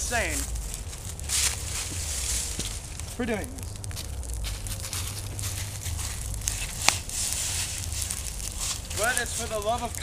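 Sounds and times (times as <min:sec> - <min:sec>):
bonfire crackling: 0:00.0 - 0:10.0.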